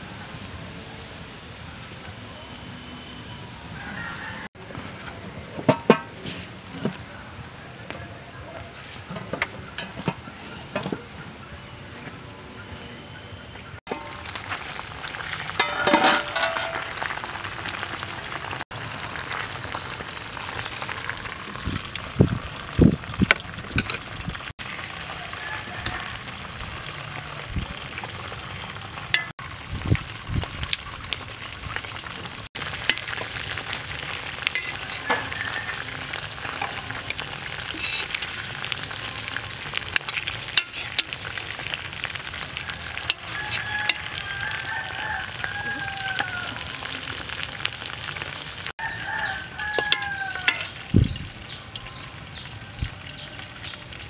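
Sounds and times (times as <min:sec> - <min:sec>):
rooster crowing: 0:03.7 - 0:04.6, 0:25.0 - 0:26.6, 0:34.6 - 0:36.6, 0:42.9 - 0:46.9, 0:48.8 - 0:50.8
food sizzling in hot oil: 0:13.9 - 0:54.0.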